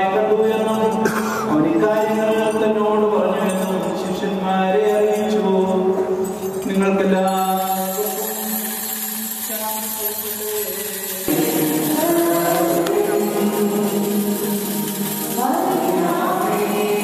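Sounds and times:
church chant singing: 0:11.3 - 0:17.0.

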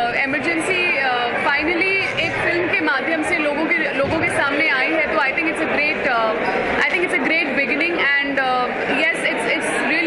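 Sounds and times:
voices chattering: 0:00.0 - 0:10.0
woman speaking: 0:00.0 - 0:10.0.

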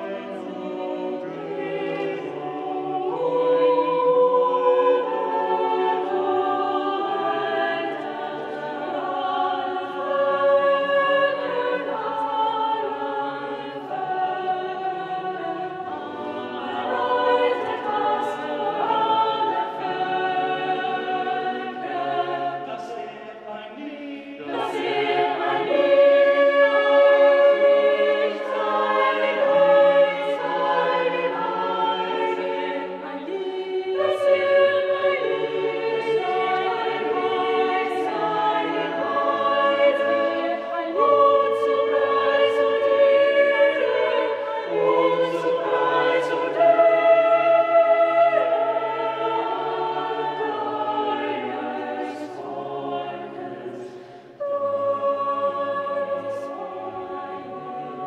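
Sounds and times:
choir singing a cappella: 0:00.0 - 0:58.0.

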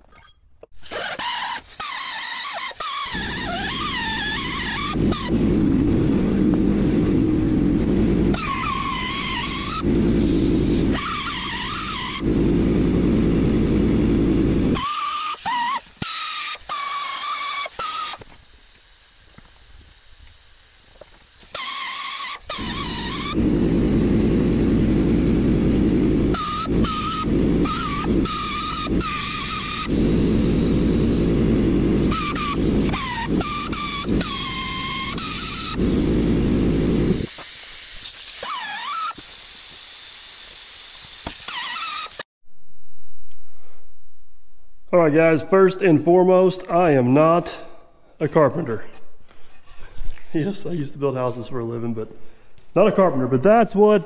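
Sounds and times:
air-powered rotary tool carving wood: 0:00.8 - 0:18.3, 0:21.4 - 0:42.2.

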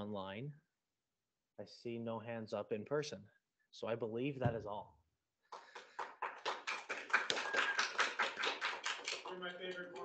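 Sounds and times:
audience applauding: 0:05.5 - 0:10.0.

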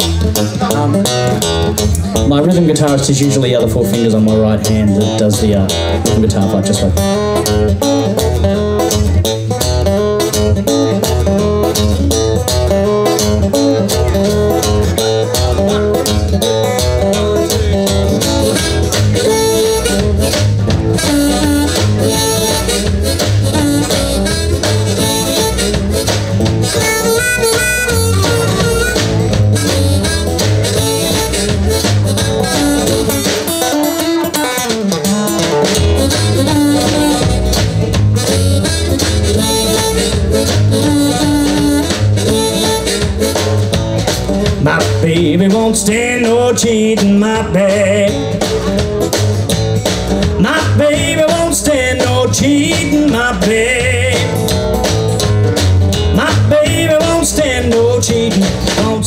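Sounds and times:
acoustic guitar: 0:00.0 - 0:59.0
drum kit: 0:00.0 - 0:59.0
upright double bass: 0:00.0 - 0:59.0
harmonica: 0:17.8 - 0:44.0.

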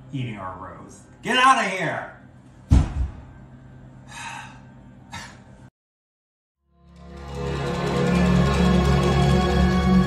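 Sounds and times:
man breathing sharply: 0:04.0 - 0:05.4.

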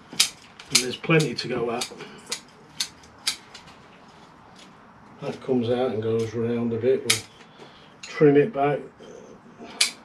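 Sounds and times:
scissors snipping roots: 0:00.1 - 0:03.7.

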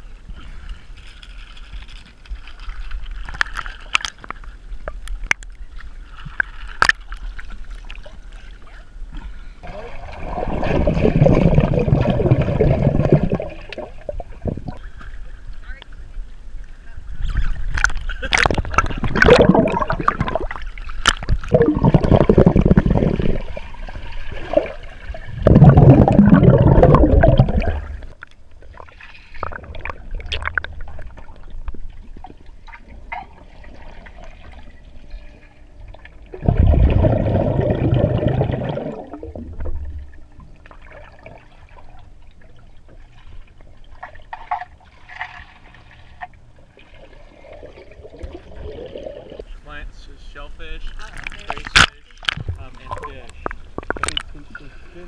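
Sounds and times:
water lapping and trickling: 0:00.0 - 0:55.0
water sloshing and gurgling: 0:00.0 - 0:55.0
water rushing: 0:18.3 - 0:28.2, 0:36.3 - 0:40.2.

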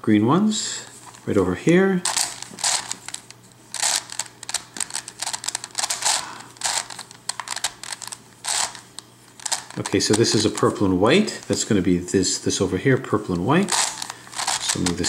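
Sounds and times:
plastic puzzle clicking and scraping: 0:02.0 - 0:08.8, 0:09.4 - 0:10.8, 0:13.6 - 0:15.0.

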